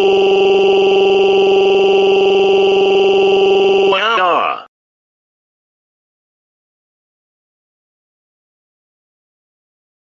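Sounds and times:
synthetic cartoon voice vowel: 3.6s - 4.7s.

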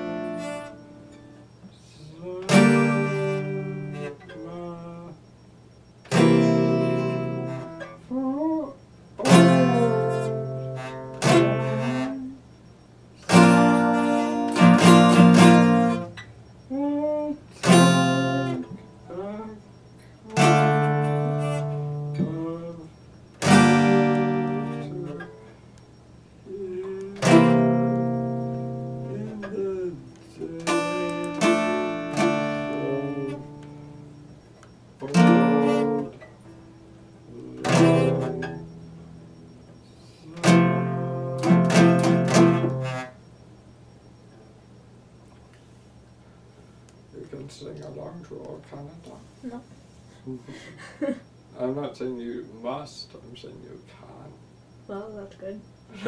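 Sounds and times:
acoustic guitar chords strummed: 0.0s - 1.6s, 2.4s - 5.3s, 6.0s - 8.0s, 9.2s - 12.3s, 13.2s - 16.3s, 17.6s - 19.6s, 20.3s - 25.6s, 26.8s - 43.3s.

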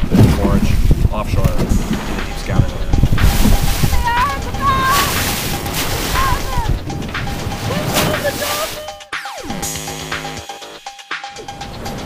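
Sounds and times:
wind rumble on microphone: 0.0s - 7.8s
man talking: 0.2s - 3.2s, 7.6s - 9.0s.

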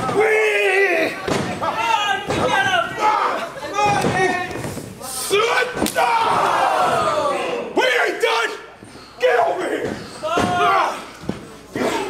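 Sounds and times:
voices shouting: 5.1s - 8.6s.

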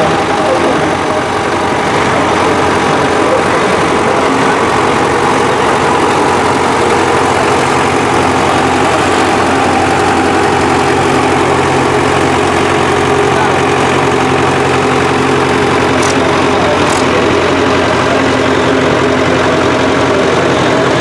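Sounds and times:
tractor diesel engines running: 0.0s - 21.0s.

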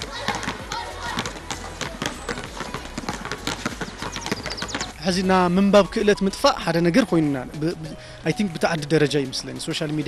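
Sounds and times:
basketballs bouncing on hard court: 0.0s - 5.0s.

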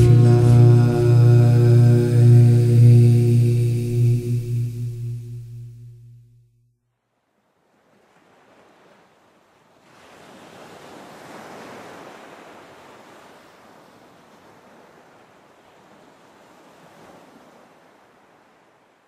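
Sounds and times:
ocean waves surf: 0.0s - 6.0s, 7.9s - 18.8s.

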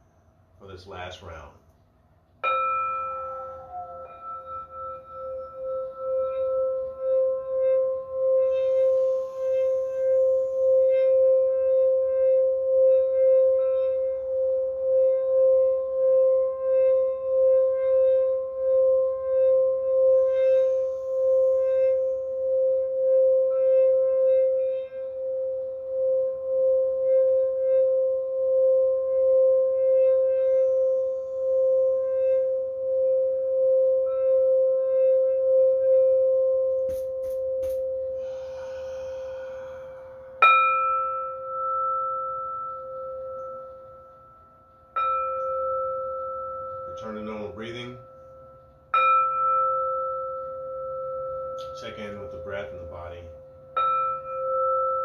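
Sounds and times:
singing bowl pulsing tone: 0.0s - 55.0s
breathy hiss: 38.1s - 40.6s.

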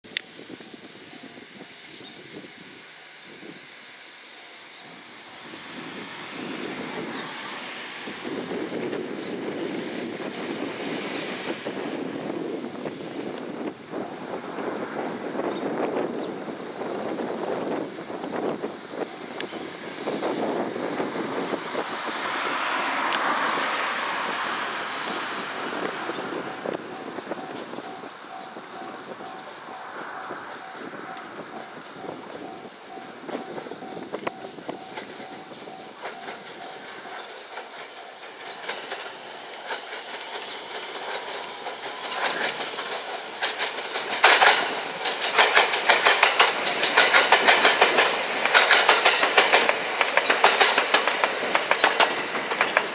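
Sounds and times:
electric train running: 0.1s - 52.9s
wheel clicks over rail joints: 36.0s - 52.9s.

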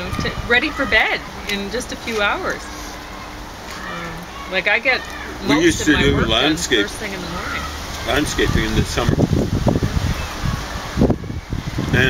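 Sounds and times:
wind buffeting microphone: 0.0s - 2.6s, 5.3s - 12.0s.

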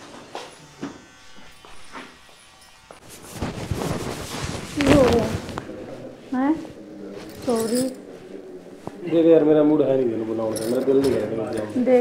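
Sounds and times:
electric hair clipper buzzing: 0.0s - 3.1s.

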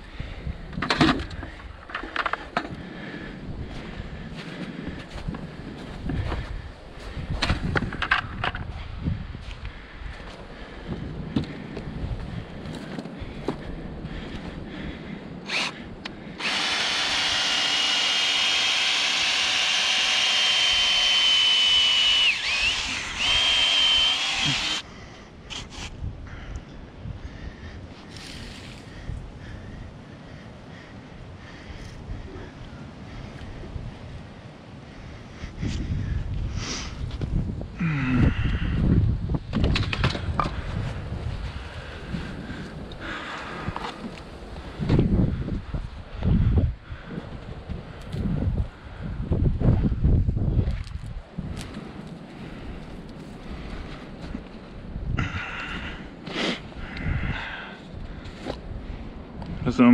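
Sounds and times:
cordless drill boring into soil: 15.4s - 24.9s, 25.5s - 25.9s.

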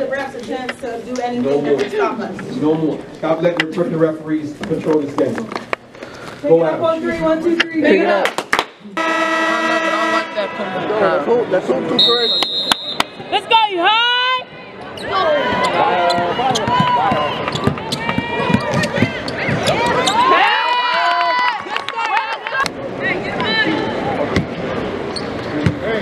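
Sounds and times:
people calling out: 8.8s - 24.2s
sneakers squeaking on floor: 14.9s - 20.3s, 25.1s - 25.8s
basketball bouncing: 16.1s - 20.2s.

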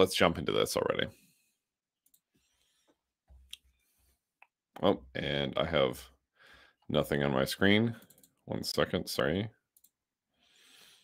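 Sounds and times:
faint computer clicks: 2.0s - 2.3s.

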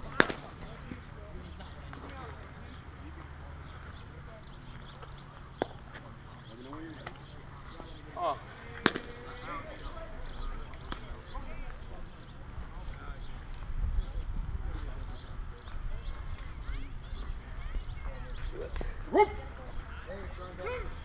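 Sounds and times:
players calling: 0.0s - 13.7s, 14.7s - 21.0s.

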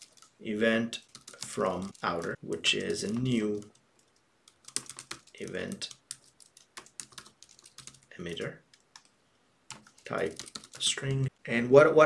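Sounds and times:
computer keyboard typing: 0.0s - 0.4s, 1.0s - 9.1s, 9.7s - 11.0s.

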